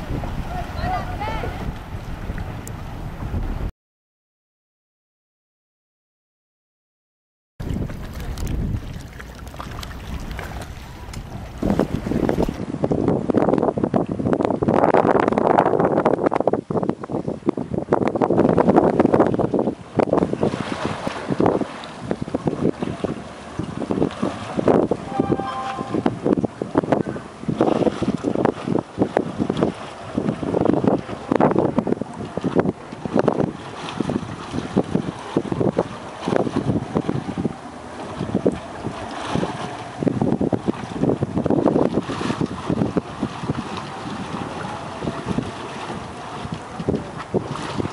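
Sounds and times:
propeller churning water: 0:00.0 - 0:03.7, 0:07.6 - 0:47.9
wind buffeting microphone: 0:00.0 - 0:03.7, 0:07.6 - 0:47.9
boat engine running: 0:07.6 - 0:13.6, 0:19.0 - 0:47.9.

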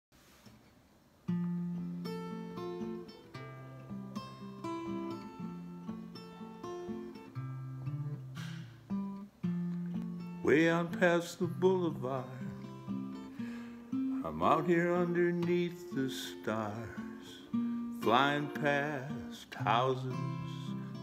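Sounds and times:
acoustic guitar picking: 0:01.2 - 0:21.0.

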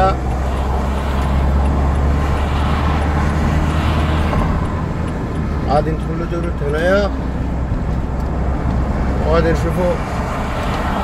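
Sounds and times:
car interior road drone: 0:00.0 - 0:11.0.

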